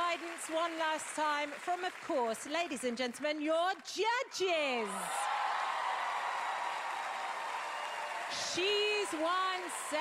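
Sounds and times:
audience applauding and cheering: 0.0s - 2.2s, 4.8s - 10.0s.

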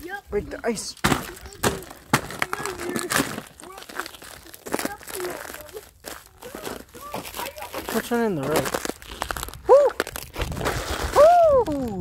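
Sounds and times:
ice cracking underfoot: 0.8s - 12.0s.

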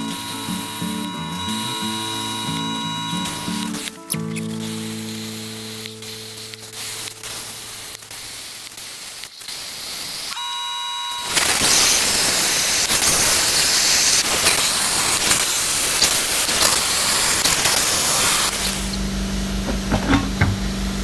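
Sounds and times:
brief high whine: 0.0s - 8.0s
plasma cutter hissing: 0.0s - 10.4s, 11.2s - 19.0s.

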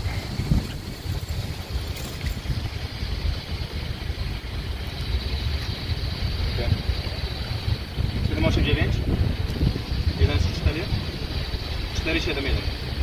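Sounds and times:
wind noise on microphone: 0.0s - 13.0s.

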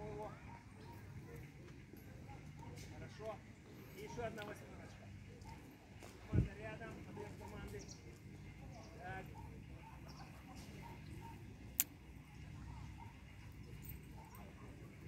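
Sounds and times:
faint distant voices: 0.0s - 15.0s.

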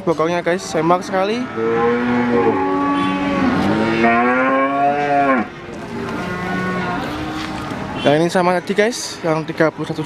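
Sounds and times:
cattle mooing: 1.1s - 5.5s, 6.2s - 7.4s.

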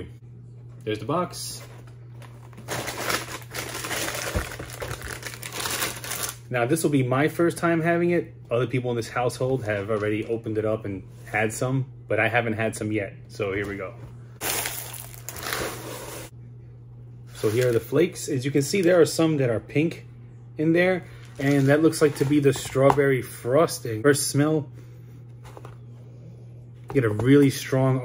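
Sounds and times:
plastic bag crinkling: 2.1s - 6.4s, 14.4s - 16.3s, 21.1s - 22.6s
dry cereal pouring into container: 14.4s - 16.3s.

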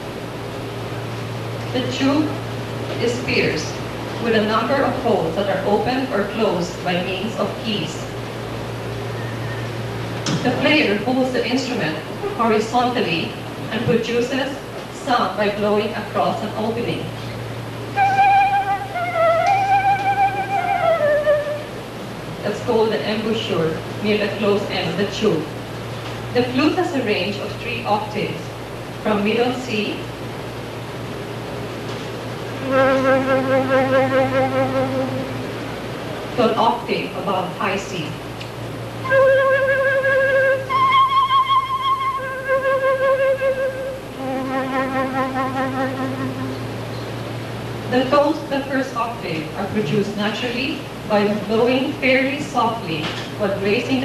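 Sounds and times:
flute playing held notes: 17.9s - 22.0s, 32.6s - 35.8s, 39.0s - 47.2s.

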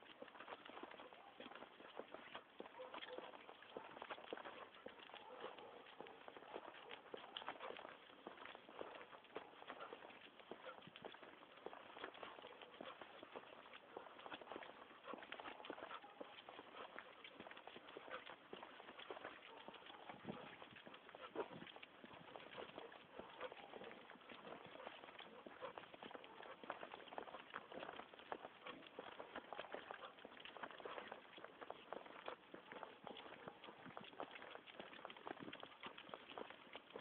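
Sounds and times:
footsteps on paving stones: 0.0s - 37.0s.

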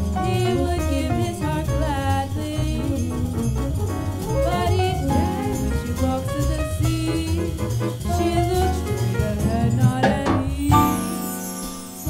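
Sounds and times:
woman singing: 0.0s - 11.4s
bass: 0.0s - 12.0s
drums: 0.0s - 12.0s
piano: 0.0s - 12.0s.

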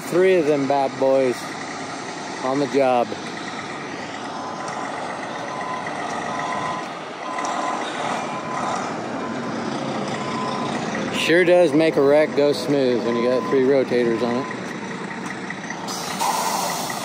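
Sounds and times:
diesel trucks running: 0.0s - 17.0s
back-up alarm beeping: 5.3s - 11.0s, 13.0s - 17.0s.

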